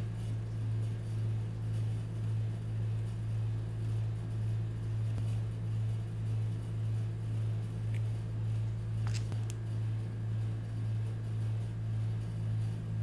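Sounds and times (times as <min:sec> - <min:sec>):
refrigeration compressor hum: 0:00.0 - 0:13.0.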